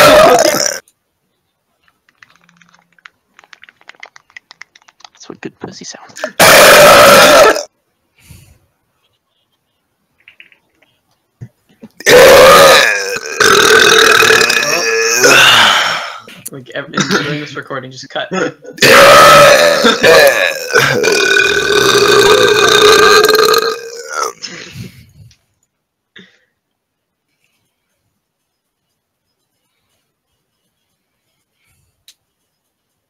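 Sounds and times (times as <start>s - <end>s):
loud drawn-out vocal noise: 0.0s - 0.8s, 6.1s - 7.7s, 12.0s - 16.3s, 18.8s - 24.4s
harsh vocal noise into microphone: 5.2s - 7.7s.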